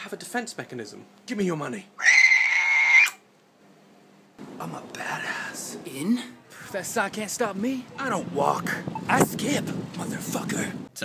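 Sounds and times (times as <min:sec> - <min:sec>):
man shrieking: 0:02.0 - 0:03.2.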